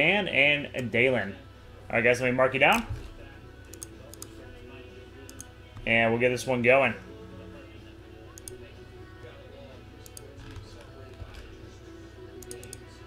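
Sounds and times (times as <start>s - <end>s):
steady low hum: 0.0s - 13.0s
television music and voices: 0.0s - 13.0s
keyboard clicks: 3.7s - 4.3s, 5.3s - 5.5s, 8.4s - 8.6s, 10.0s - 10.6s, 12.4s - 12.8s.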